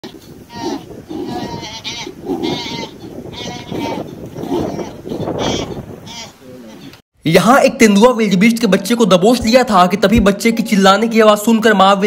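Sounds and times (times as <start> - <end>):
animal calf bleating: 0.0 - 6.9.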